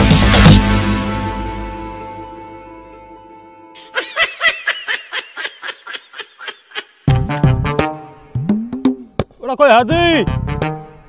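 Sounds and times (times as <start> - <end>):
high-pitched snickering laughter: 3.8 - 7.1.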